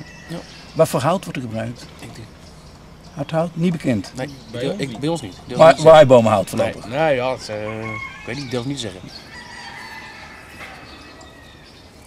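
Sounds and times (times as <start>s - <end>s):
bird calling: 0.0s - 12.0s
outdoor background noise: 0.0s - 12.0s.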